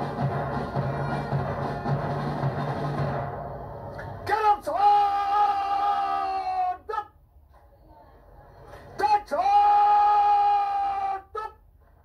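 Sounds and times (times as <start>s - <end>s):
drill command shouted: 4.3s - 5.6s.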